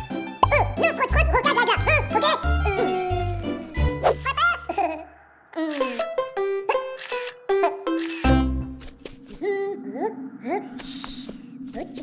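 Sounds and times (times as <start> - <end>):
cartoon music with pulsing bass: 0.0 - 4.5.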